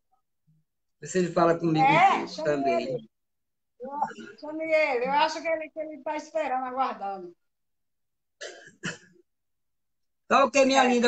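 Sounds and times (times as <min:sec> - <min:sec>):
person clearing throat: 0:08.4 - 0:09.2.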